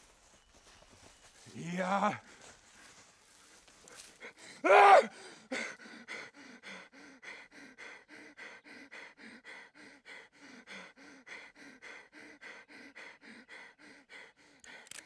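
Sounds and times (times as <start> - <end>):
man panting heavily: 1.5 - 15.0.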